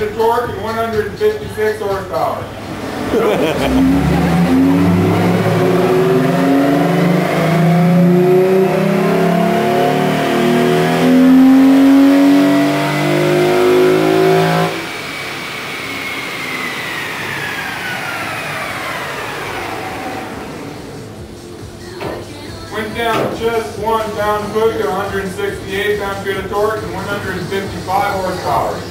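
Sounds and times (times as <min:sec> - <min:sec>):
dyno rollers whine spinning down: 0:01.2 - 0:21.6, 0:22.8 - 0:28.9
car engine at full throttle: 0:02.5 - 0:21.8.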